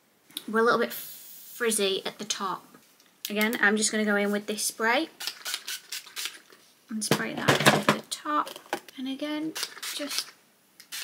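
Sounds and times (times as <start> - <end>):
hair spray hissing: 0.9 - 1.7, 9.6 - 11.0.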